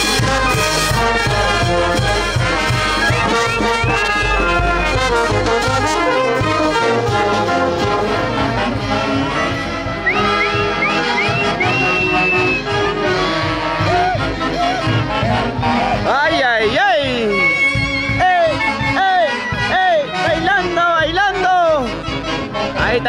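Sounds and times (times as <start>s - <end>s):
brass band playing dance tune: 0.0s - 23.0s.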